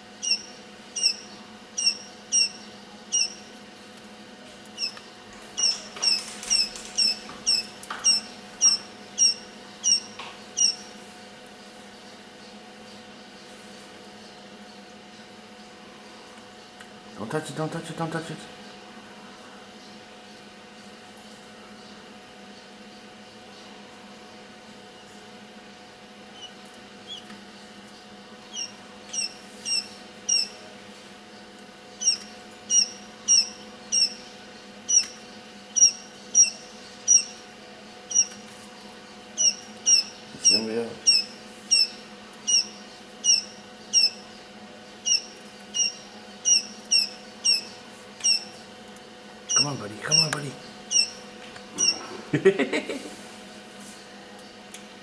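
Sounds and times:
steady low hum: 0:00.0 - 0:55.0
chicks peeping: 0:00.1 - 0:03.6, 0:04.8 - 0:11.0, 0:26.4 - 0:30.6, 0:31.4 - 0:48.8, 0:49.4 - 0:52.3.

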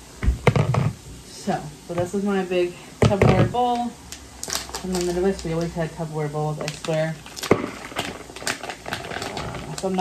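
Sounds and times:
small crackles and ticks: 0:03.7 - 0:05.8, 0:06.6 - 0:10.0
plastic pouch crinkling: 0:04.1 - 0:05.8, 0:06.6 - 0:10.0.

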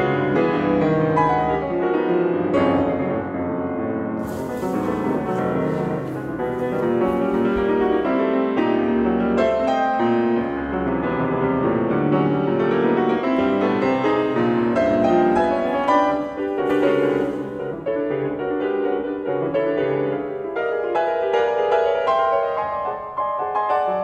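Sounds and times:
grand piano playing fast notes: 0:00.0 - 0:24.0.

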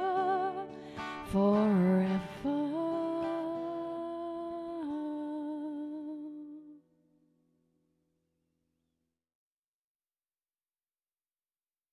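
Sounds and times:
woman singing with vibrato: 0:00.0 - 0:06.8.

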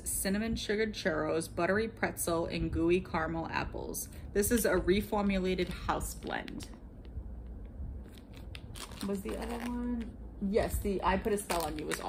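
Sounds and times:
plastic bag crinkling: 0:08.0 - 0:10.1, 0:11.2 - 0:12.0.

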